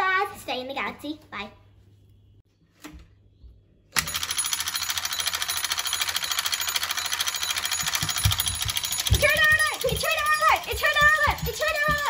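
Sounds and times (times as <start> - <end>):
electric alarm bell ringing: 4.0 - 12.0.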